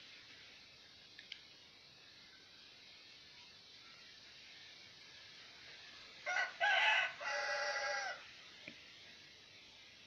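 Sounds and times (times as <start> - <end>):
rooster crowing: 6.2 - 8.3.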